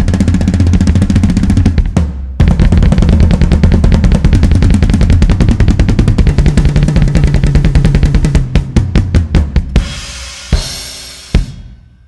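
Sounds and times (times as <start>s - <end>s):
deep bass: 0.0s - 10.7s
fast drum kit playing: 0.0s - 12.0s.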